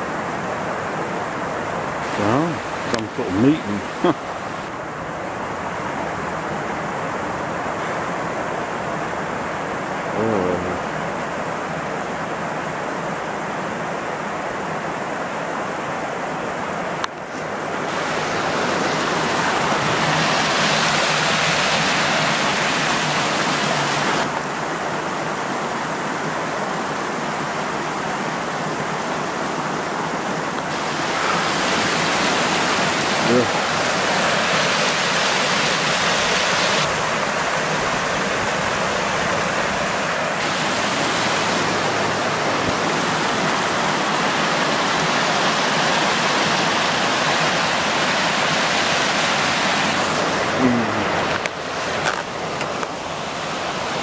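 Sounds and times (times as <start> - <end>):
river water rushing over rocks: 0.0 - 54.0.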